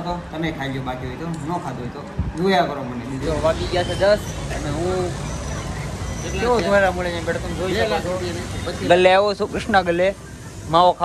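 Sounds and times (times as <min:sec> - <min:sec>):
low rumble of street traffic: 0:00.0 - 0:11.0
men talking: 0:00.0 - 0:11.0.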